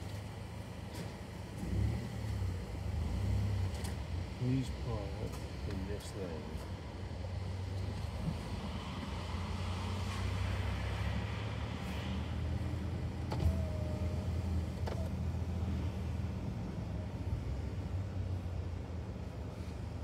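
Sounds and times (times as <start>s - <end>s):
car engine and tyre hum: 0.0s - 20.0s.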